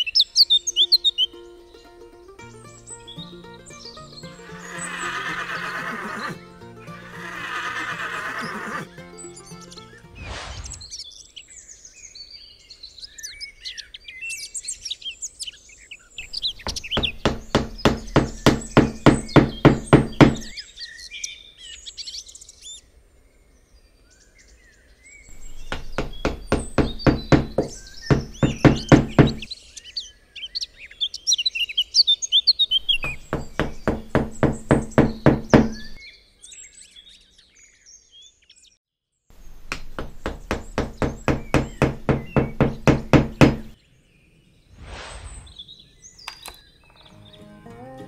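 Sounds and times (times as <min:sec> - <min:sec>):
birds chirping: 0:00.0 - 0:38.8, 0:39.4 - 0:48.0
rapid even knocking: 0:16.5 - 0:20.5, 0:25.3 - 0:29.5, 0:32.9 - 0:36.0, 0:39.6 - 0:43.8.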